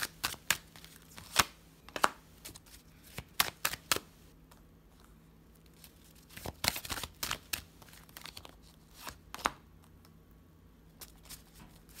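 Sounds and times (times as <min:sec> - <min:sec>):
cards being shuffled: 0:00.0 - 0:04.1, 0:05.7 - 0:09.6.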